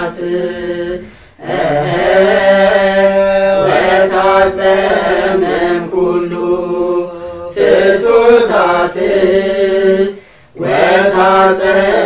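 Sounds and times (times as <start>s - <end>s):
voices chanting a prayer: 0.0s - 12.0s.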